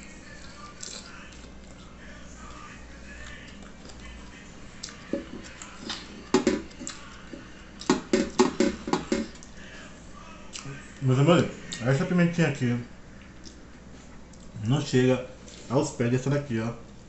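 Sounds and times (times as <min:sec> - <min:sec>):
man chewing wetly: 0:00.0 - 0:09.7, 0:13.1 - 0:14.6.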